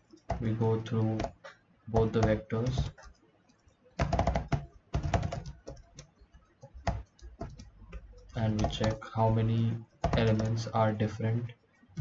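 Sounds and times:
computer keyboard typing: 0.0 - 12.0.

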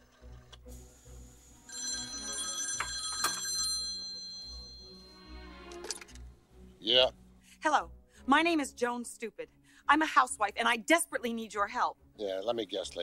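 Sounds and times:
telephone bell ringing: 1.7 - 5.4.

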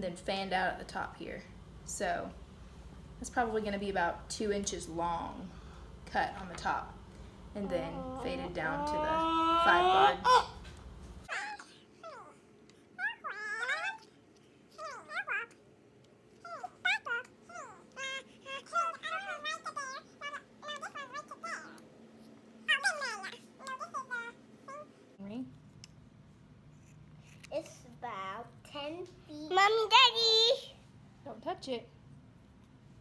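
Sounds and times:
toddler babbling and whining: 7.8 - 10.6, 11.3 - 12.4, 13.0 - 14.1, 14.8 - 15.6, 16.4 - 21.8, 22.7 - 24.9.

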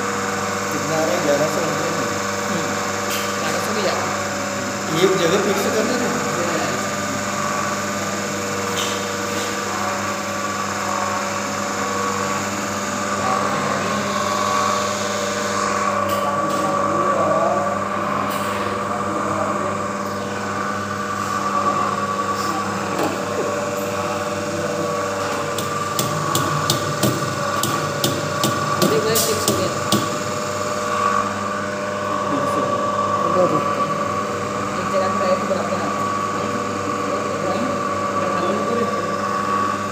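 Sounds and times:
small electric motor humming: 0.0 - 39.9.

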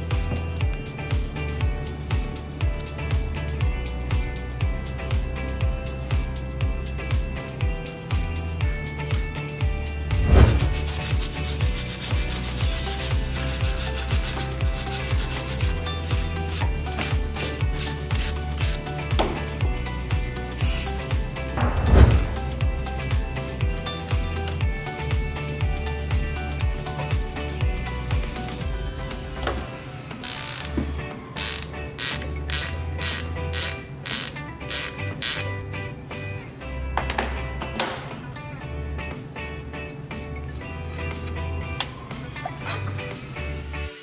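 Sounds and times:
background music with steady beat: 0.0 - 44.0
wire brush scrubbing metal: 10.4 - 18.8
ratchet spanner clicking: 30.2 - 30.8, 31.4 - 35.5.

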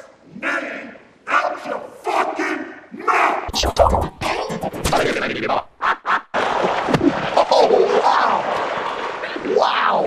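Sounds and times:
electronically warped voice: 3.4 - 5.8.

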